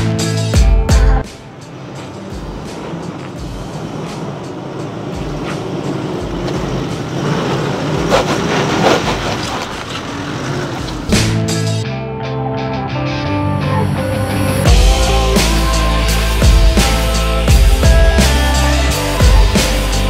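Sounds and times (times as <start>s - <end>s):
car engine climbing over rock: 1.4s - 11.6s.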